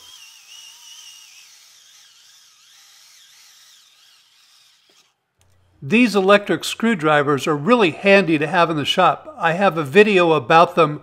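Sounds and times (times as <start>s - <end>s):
electric screwdriver whining: 0.0s - 5.6s.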